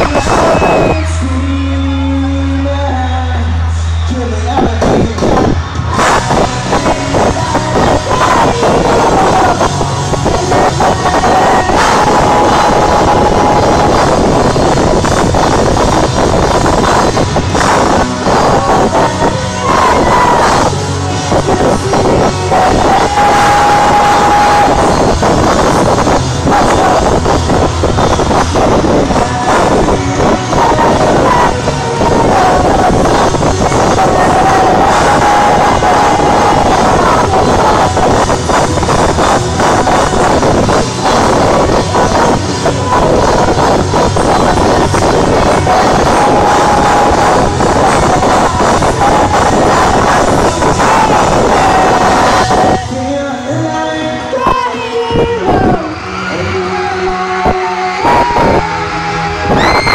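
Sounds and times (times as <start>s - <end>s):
rock band playing live: 0.0s - 59.9s.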